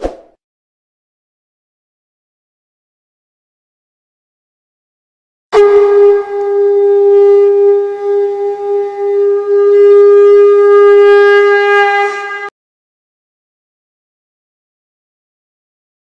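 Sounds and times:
conch shell blown: 0:05.5 - 0:12.5.

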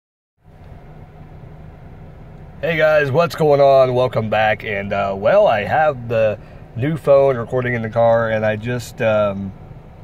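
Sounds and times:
car interior hum: 0:00.4 - 0:10.0.

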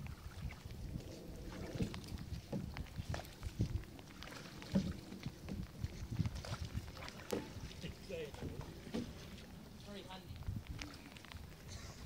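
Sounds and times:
water splashing and sloshing: 0:00.0 - 0:12.0
wind rumbling on microphone: 0:00.0 - 0:12.0.

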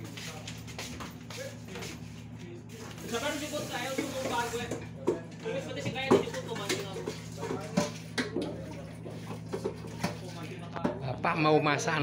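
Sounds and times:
low machinery hum: 0:00.0 - 0:12.0
running water: 0:02.7 - 0:04.9.

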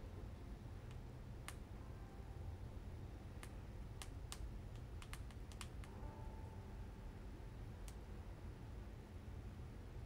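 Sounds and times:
low steady hum: 0:00.0 - 0:10.0
faint light clicks: 0:03.4 - 0:06.0.

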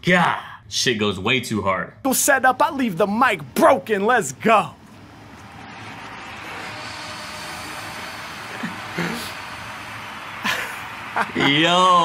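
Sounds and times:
steady rushing noise: 0:04.8 - 0:12.0.

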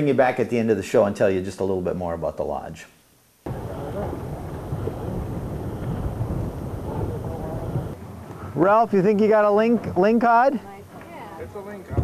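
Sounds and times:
boat engine rumble: 0:03.5 - 0:08.0
wind buffeting microphone: 0:03.5 - 0:08.6.

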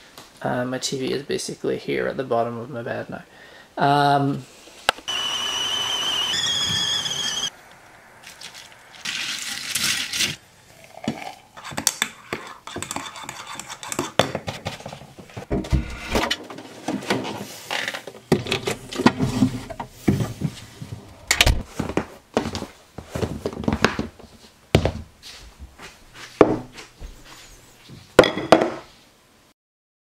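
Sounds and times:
kettle whistling: 0:05.1 - 0:07.9
liquid pouring: 0:08.2 - 0:11.4.

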